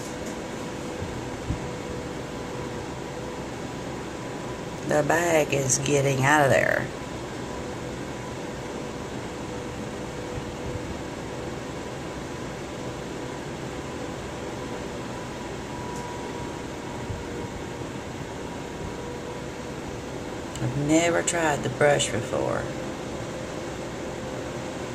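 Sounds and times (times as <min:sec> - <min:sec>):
electric fan running: 0:00.0 - 0:24.9.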